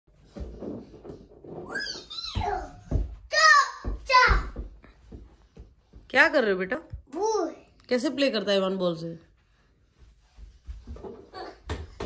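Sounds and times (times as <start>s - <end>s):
toddler babbling and squealing: 1.6s - 4.3s.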